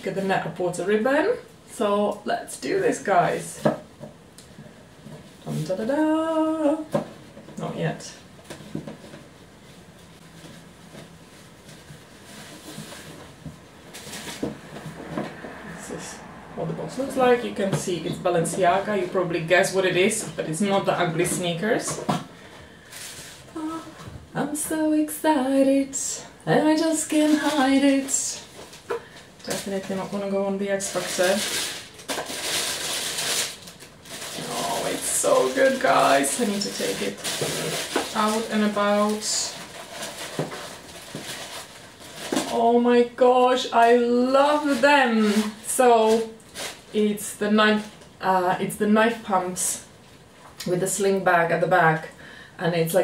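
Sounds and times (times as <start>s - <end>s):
wrapping paper rustling: 8.4s - 15.1s, 22.7s - 23.8s, 26.6s - 47.0s.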